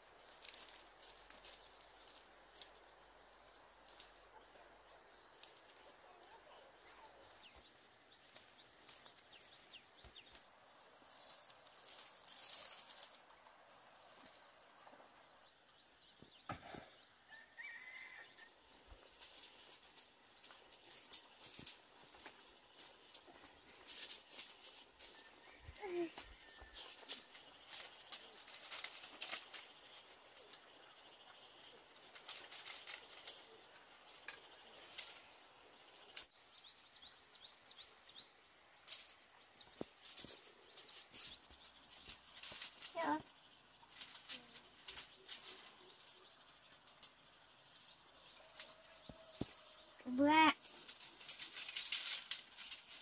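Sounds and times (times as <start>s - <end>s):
dry grass stalks crackling: 0.0s - 15.5s, 17.6s - 38.0s, 38.6s - 53.0s.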